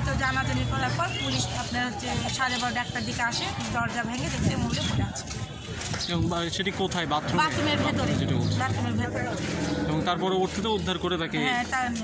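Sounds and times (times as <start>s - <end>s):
women talking: 0.0s - 5.6s, 7.3s - 9.8s, 11.4s - 12.0s.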